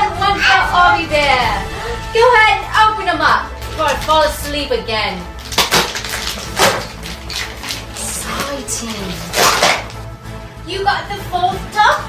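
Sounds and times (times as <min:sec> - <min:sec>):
packaging being torn open: 0:05.4 - 0:10.0.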